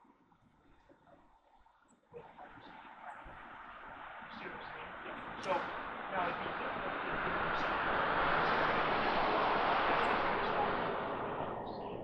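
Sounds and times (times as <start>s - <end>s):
faint voices: 2.2s - 12.0s
vehicle passing: 4.5s - 12.0s.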